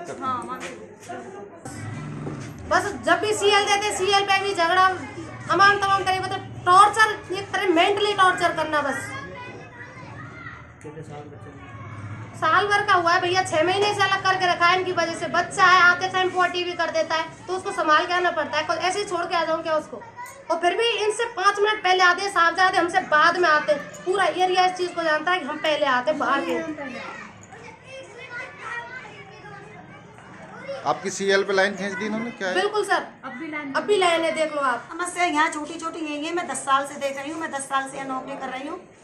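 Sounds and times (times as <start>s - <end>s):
children chattering: 0.0s - 39.0s
interview speech: 0.0s - 39.0s.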